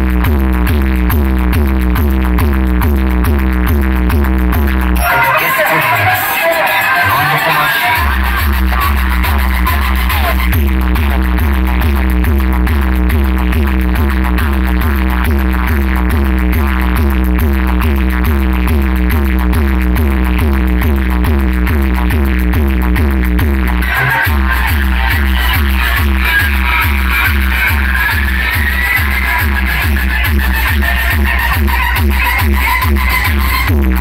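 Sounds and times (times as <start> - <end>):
fast repeating beat: 0.0 - 34.0
heavy continuous bass: 0.0 - 34.0
loud electronic dance music: 0.0 - 34.0.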